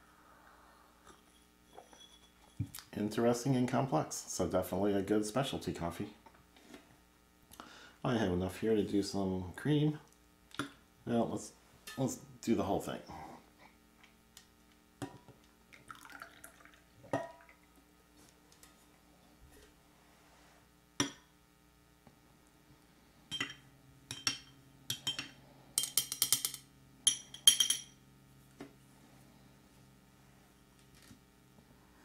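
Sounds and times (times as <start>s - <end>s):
spoon clinking against glass: 25.8s - 28.0s.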